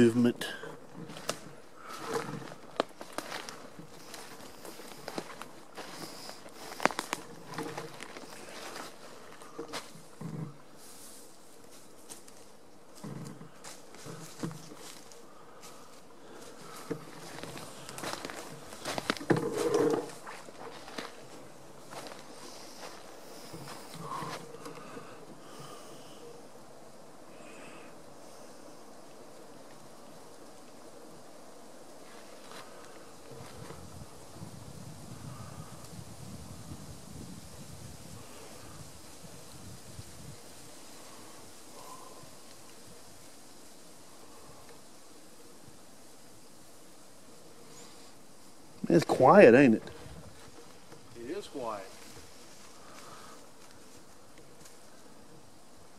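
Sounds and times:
insect hum: 0:00.0 - 0:55.9
close rustles and knocks: 0:16.7 - 0:24.7.

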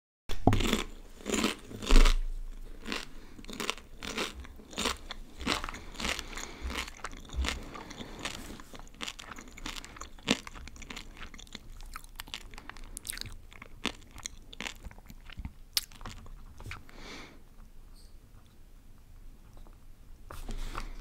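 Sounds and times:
person chewing crunchy snack: 0:00.3 - 0:17.0.

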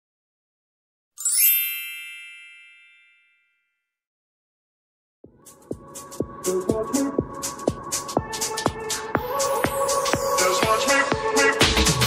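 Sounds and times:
bell-like chime: 0:01.2 - 0:04.0.

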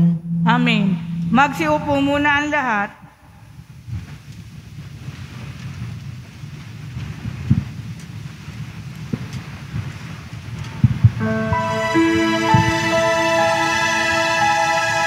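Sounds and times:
instrumental music with held notes: 0:11.2 - 0:15.0.

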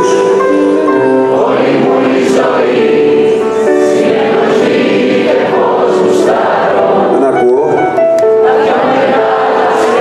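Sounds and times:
audience singing along: 0:00.0 - 0:07.4, 0:08.2 - 0:10.0
acoustic band accompaniment: 0:00.0 - 0:10.0.

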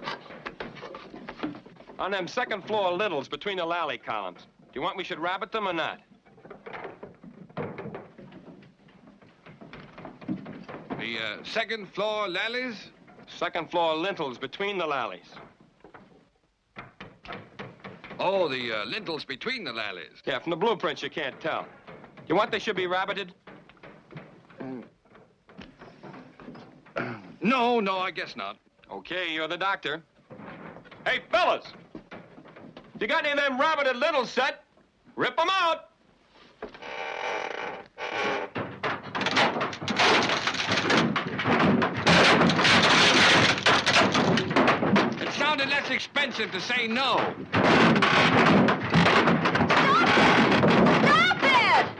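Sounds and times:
low background noise: 0:00.0 - 0:51.9
hammers banging on boards: 0:16.7 - 0:18.6, 0:38.5 - 0:51.9.

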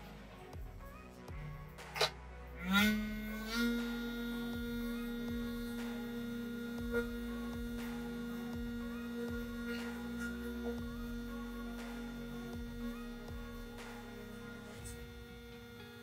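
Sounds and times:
vibration motor humming: 0:00.0 - 0:16.0.

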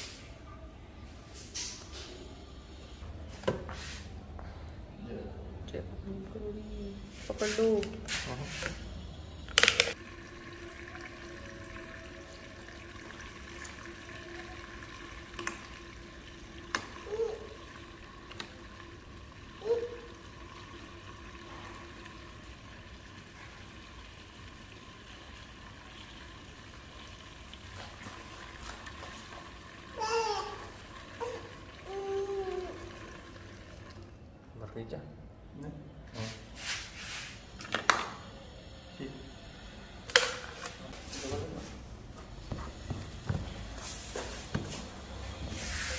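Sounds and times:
fuel pouring through funnel: 0:09.9 - 0:34.4.

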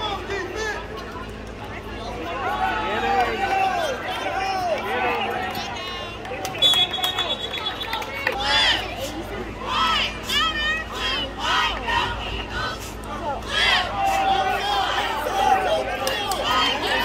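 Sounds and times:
crowd shouting and yelling: 0:00.0 - 0:17.0
whistle blowing: 0:06.5 - 0:08.0.

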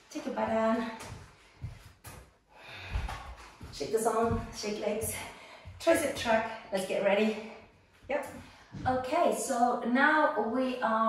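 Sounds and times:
woman breathing: 0:01.0 - 0:03.7, 0:05.1 - 0:05.8, 0:06.4 - 0:08.9.

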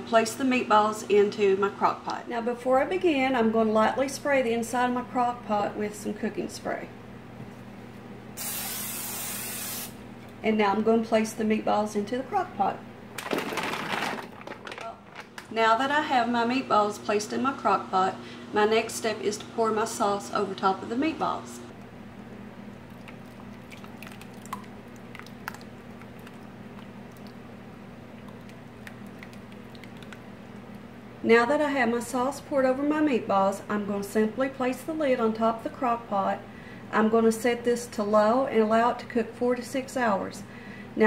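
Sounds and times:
aerosol cooking spray hissing: 0:08.4 - 0:10.0
steady low hum: 0:14.3 - 0:37.6
sauce pouring with wet squishes: 0:22.6 - 0:30.9.

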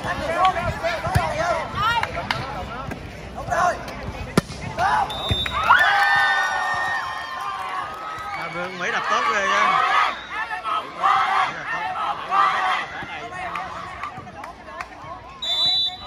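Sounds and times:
people shouting and cheering: 0:03.4 - 0:16.0
volleyball slaps: 0:04.3 - 0:06.8
short high whistle: 0:15.4 - 0:16.0.

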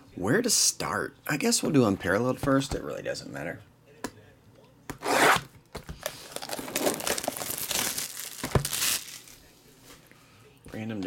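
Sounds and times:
plastic crinkling and tearing: 0:06.0 - 0:09.5
knife slitting shrink wrap: 0:06.1 - 0:09.4.

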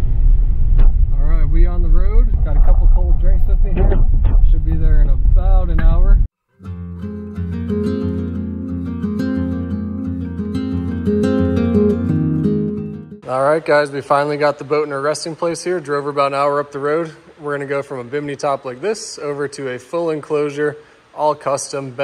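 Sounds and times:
plucked guitar music: 0:06.5 - 0:13.2.

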